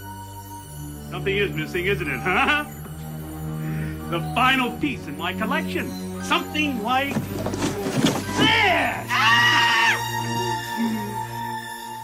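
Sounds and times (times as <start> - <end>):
suspenseful music: 0.0 - 12.0
high shrill cry: 8.3 - 10.2.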